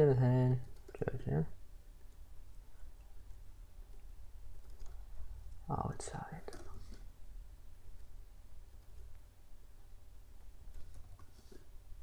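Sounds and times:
low electrical hum: 0.0 - 12.0
man half-whispering: 5.6 - 7.0.

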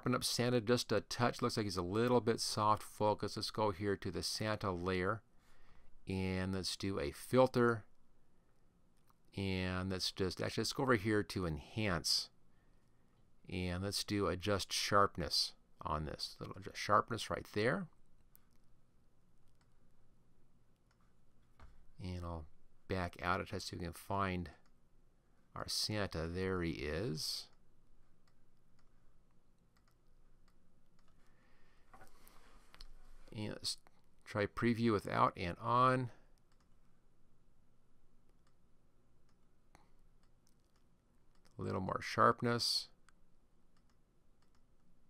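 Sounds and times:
faint clicks: 28.2 - 31.2, 36.3 - 36.8, 39.2 - 41.6, 43.0 - 44.9.

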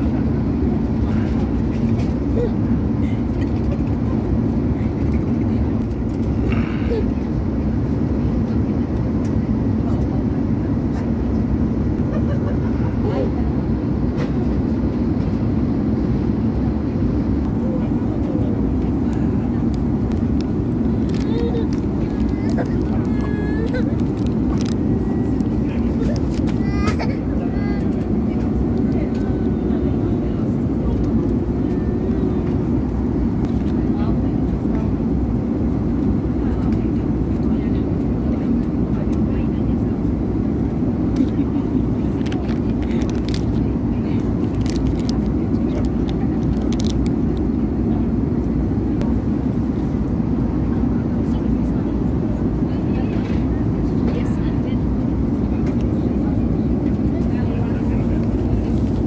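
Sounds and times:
airliner cabin noise: 0.0 - 59.0.

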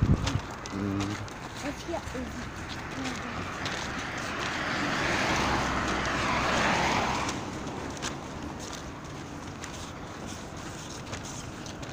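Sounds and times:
car tyres hissing on wet road: 4.6 - 7.3.

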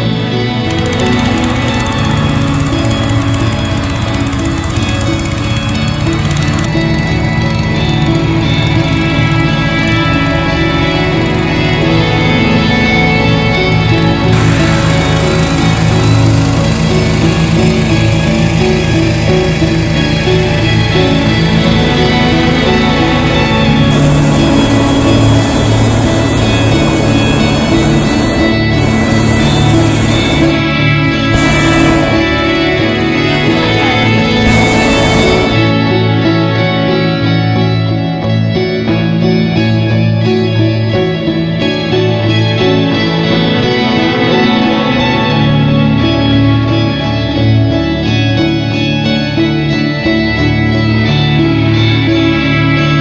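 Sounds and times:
background music with sustained tones: 0.0 - 53.0
propane burner rushing: 0.7 - 6.9, 14.2 - 21.5, 23.4 - 35.8.

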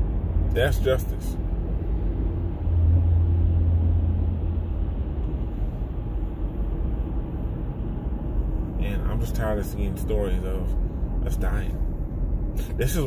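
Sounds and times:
car rumble inside cabin: 0.0 - 13.0.

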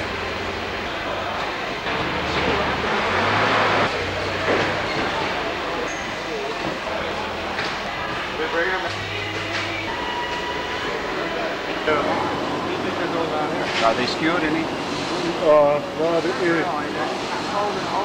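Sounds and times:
indistinct voices: 0.0 - 18.0
warehouse rumble and hum: 0.0 - 18.0.

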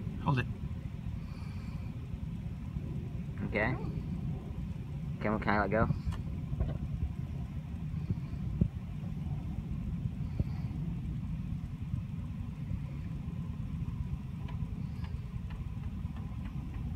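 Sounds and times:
wind rumbling on microphone: 0.0 - 16.9.

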